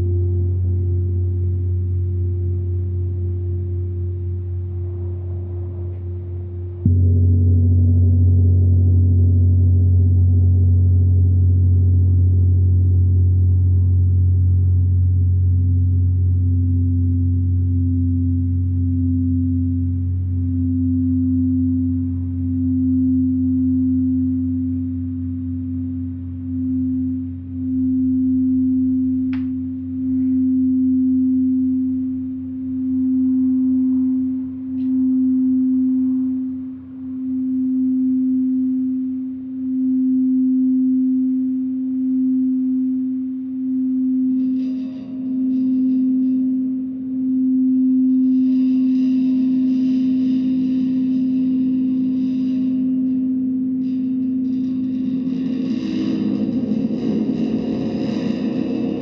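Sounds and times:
crystal singing bowl tone: 0:00.0 - 0:59.0
deep gong hum: 0:00.0 - 0:59.0
gong shimmering wash: 0:43.9 - 0:59.0.

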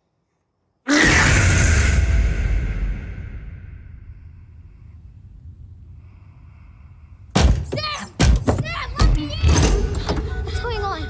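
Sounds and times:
loud bangs against a car: 0:07.3 - 0:08.6.

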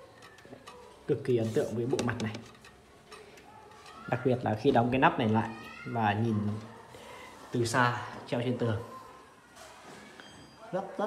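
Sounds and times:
man speaking: 0:01.1 - 0:02.5.

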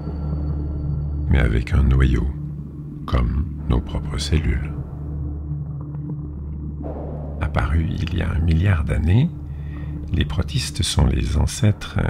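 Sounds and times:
low rumbling drone music: 0:00.0 - 0:12.0.

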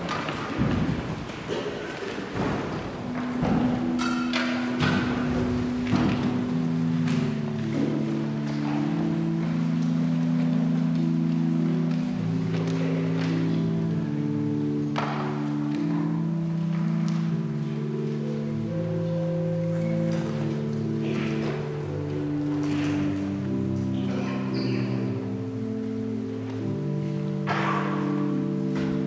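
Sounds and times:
organ playing soft chords: 0:00.0 - 0:29.0.

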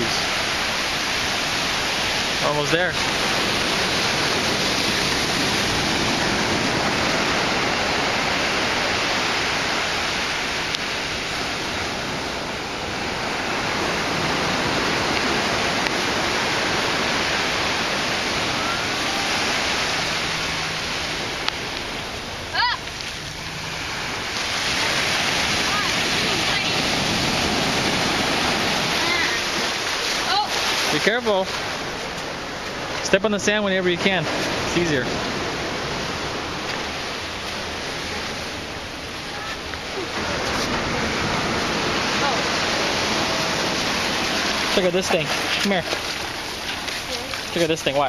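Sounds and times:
ocean surf breaking on beach: 0:00.0 - 0:48.0.

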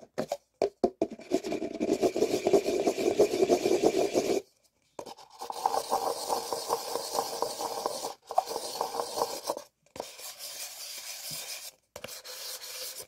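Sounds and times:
paper cups scraping together: 0:05.0 - 0:13.0.

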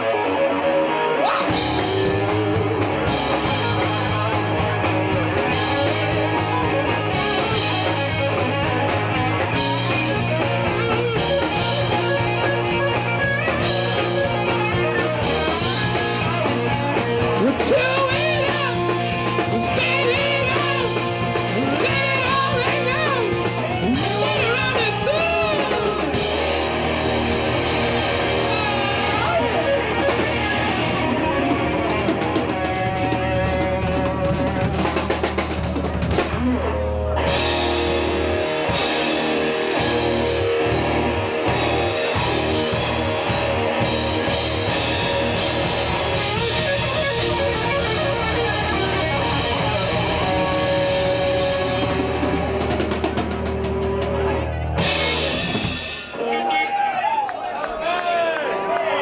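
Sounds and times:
person singing: 0:00.0 - 0:08.2, 0:14.3 - 0:26.6, 0:28.2 - 0:34.7
drum kit: 0:00.0 - 0:57.2
bass guitar: 0:00.0 - 0:59.0
electric guitars: 0:00.0 - 0:59.0.

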